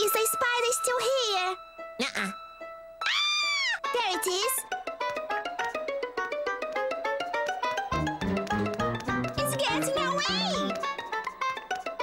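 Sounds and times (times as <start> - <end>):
lively cartoon music: 0.0 - 12.0.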